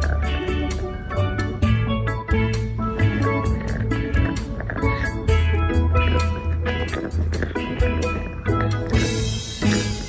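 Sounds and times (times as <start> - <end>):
upbeat music with strong bass: 0.0 - 10.0.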